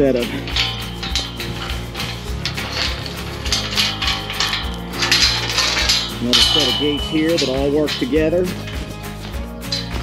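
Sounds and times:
background music: 0.0s - 10.0s
chain clinking against metal gate: 0.0s - 10.0s.

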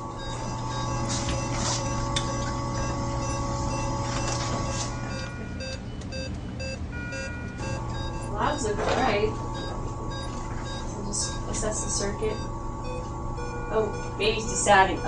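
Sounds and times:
medical alarms beeping: 0.0s - 15.0s
steady equipment hum: 0.0s - 15.0s.

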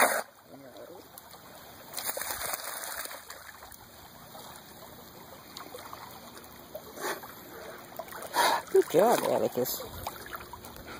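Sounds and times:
water splashing and sloshing: 0.0s - 10.9s.

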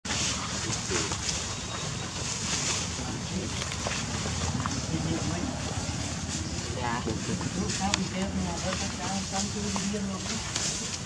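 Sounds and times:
indistinct background voices: 0.1s - 11.0s
steady outdoor hiss: 0.1s - 11.0s.

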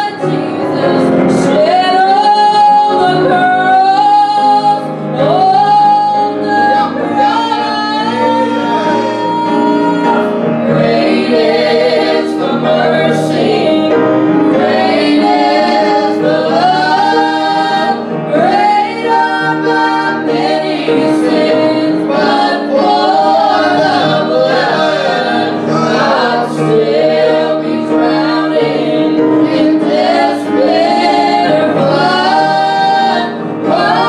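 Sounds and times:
piano accompaniment: 0.0s - 34.0s
voices singing a hymn: 0.0s - 34.0s.

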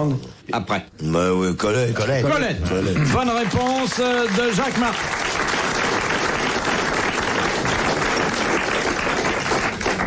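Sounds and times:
audience applauding: 2.7s - 10.0s.

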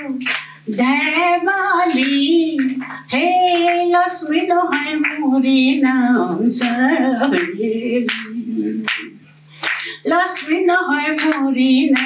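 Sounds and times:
elderly woman singing: 0.0s - 9.1s, 10.0s - 12.0s.

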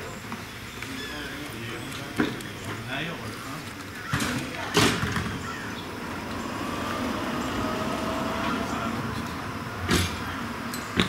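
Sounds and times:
vehicle driving past: 5.6s - 10.6s.

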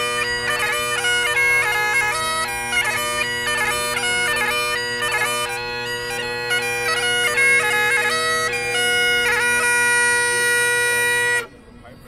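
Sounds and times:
bagpipe chanter note and drones: 0.0s - 12.0s.

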